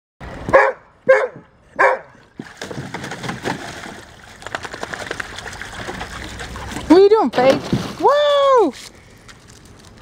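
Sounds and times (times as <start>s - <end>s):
dog barking: 0.5s - 2.1s.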